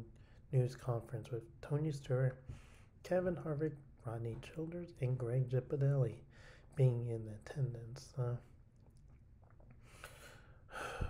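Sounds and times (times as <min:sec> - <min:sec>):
person breathing: 0:02.4 - 0:03.0, 0:06.3 - 0:06.8, 0:09.8 - 0:11.0.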